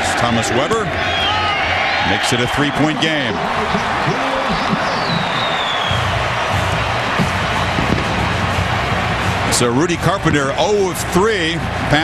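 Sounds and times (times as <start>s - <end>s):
stadium crowd cheering: 0.0s - 12.0s.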